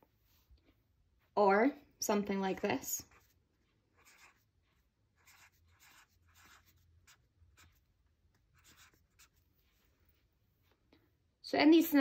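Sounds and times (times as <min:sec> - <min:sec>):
marker writing on paper: 0:03.0 - 0:10.2.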